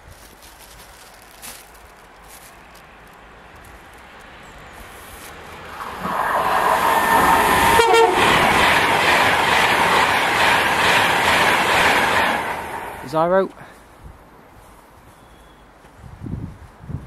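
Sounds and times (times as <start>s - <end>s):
train passing at speed: 4.1s - 13.5s
brief tone: 15.1s - 15.7s.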